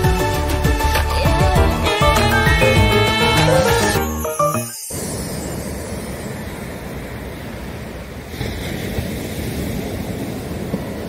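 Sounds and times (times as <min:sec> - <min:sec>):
surf breaking on a beach: 0:04.9 - 0:11.0
wind buffeting microphone: 0:06.4 - 0:11.0.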